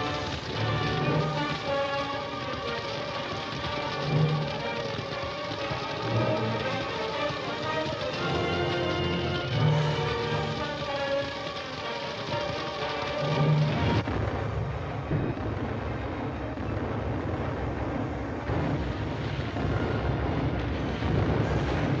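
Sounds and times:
large fire roaring: 0.0s - 22.0s
low rumbling explosion: 0.0s - 22.0s
orchestral film music: 0.0s - 22.0s.

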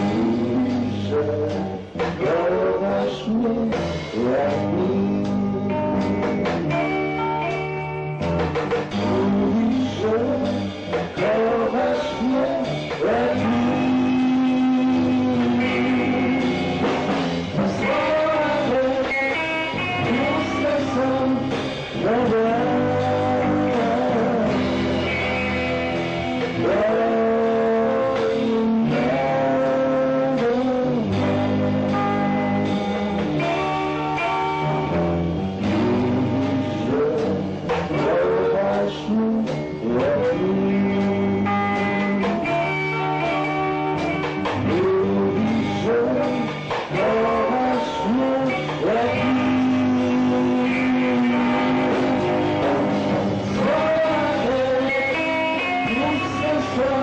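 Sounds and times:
live rock band playing: 0.0s - 57.0s
sliding electric guitar notes: 3.8s - 57.0s.

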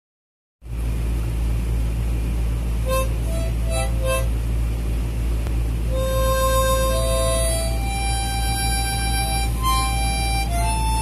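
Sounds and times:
steady low hum: 0.6s - 11.0s.

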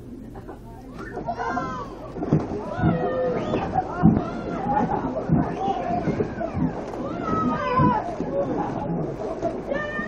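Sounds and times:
pool water splashing: 0.0s - 10.0s
children squealing and laughing: 1.0s - 8.8s
dull water thumps: 1.1s - 10.0s.

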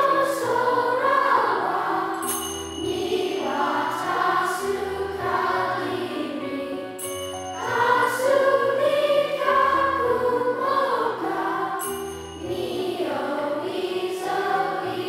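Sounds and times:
children's choir singing: 0.0s - 15.0s
high bright chime: 2.1s - 4.2s, 7.0s - 8.6s, 11.7s - 13.1s.

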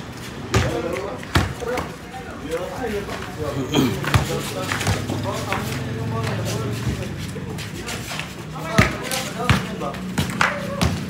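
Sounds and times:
players calling out: 0.1s - 11.0s
basketball bouncing on concrete: 0.4s - 2.0s, 4.0s - 7.2s, 8.1s - 11.0s.

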